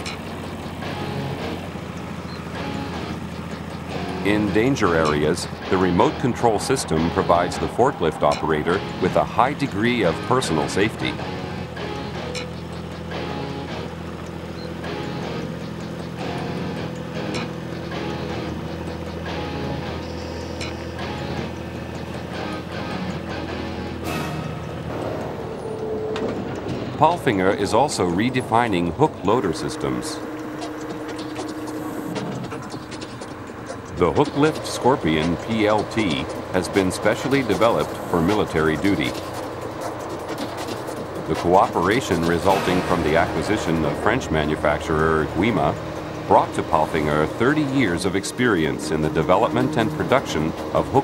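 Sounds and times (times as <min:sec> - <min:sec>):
forklift engine running: 0:00.0 - 0:51.0
soft background music: 0:00.0 - 0:51.0.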